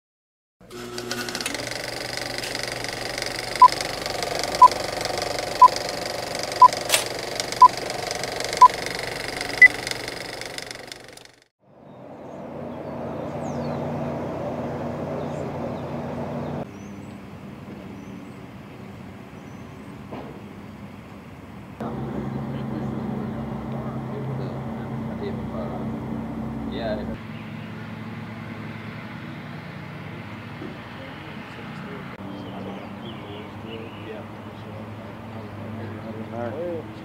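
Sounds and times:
mechanical running noise: 0:00.6 - 0:11.5
outdoor background: 0:00.6 - 0:37.0
engine-like rumble: 0:02.1 - 0:17.2, 0:21.8 - 0:37.0.

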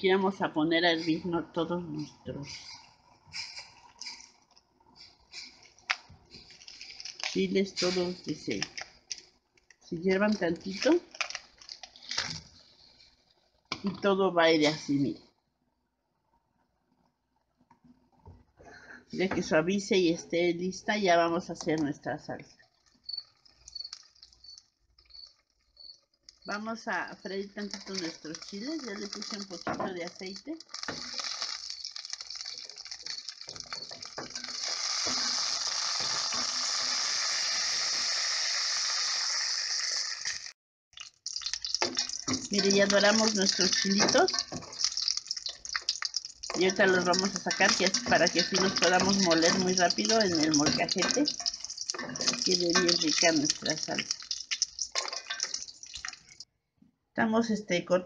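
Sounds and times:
chiles sizzling in oil: 0:00.0 - 0:15.2, 0:21.0 - 0:56.5
vegetables splashing into water: 0:39.2 - 0:56.4
spoon clinking on pot: 0:41.8 - 0:45.9, 0:46.5 - 0:56.1.

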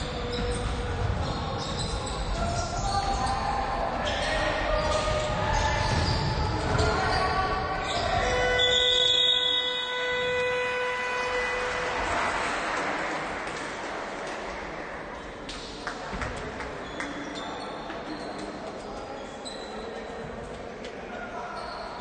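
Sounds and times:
players calling: 0:00.2 - 0:14.1
buzzer horn: 0:08.3 - 0:12.3.

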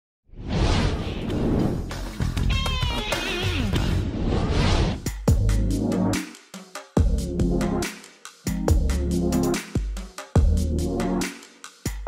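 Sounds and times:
whoosh sound effect: 0:00.4 - 0:01.9.

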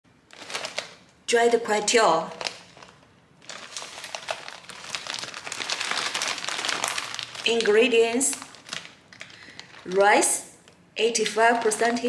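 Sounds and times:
plastic bag crinkling: 0:00.3 - 0:01.1, 0:02.3 - 0:12.0.

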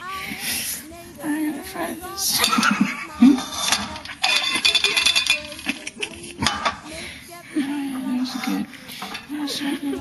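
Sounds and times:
pan and objects rattling: 0:02.4 - 0:07.0, 0:08.2 - 0:09.5.

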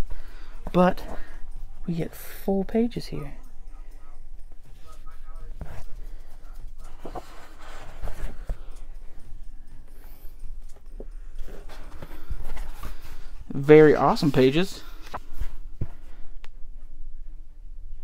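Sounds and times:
paper pages rustling: 0:04.5 - 0:16.1.

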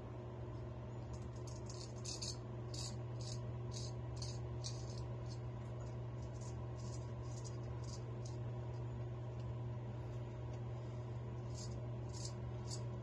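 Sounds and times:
steady low hum: 0:00.0 - 0:13.0
razor scraping stubble: 0:01.1 - 0:08.9, 0:11.4 - 0:13.0.

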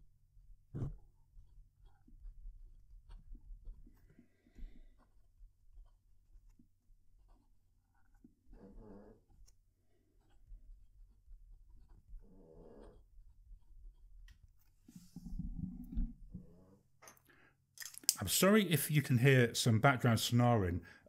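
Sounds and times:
pen nib scratching paper: 0:00.8 - 0:16.0.

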